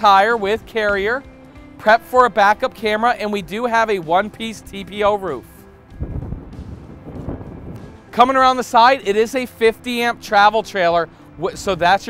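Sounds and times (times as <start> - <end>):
wind rumbling on microphone: 5.8 - 8.2.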